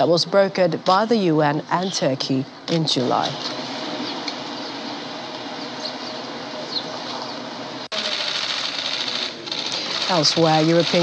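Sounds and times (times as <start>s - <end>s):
camera shutters clicking rapidly: 8.0s - 11.0s.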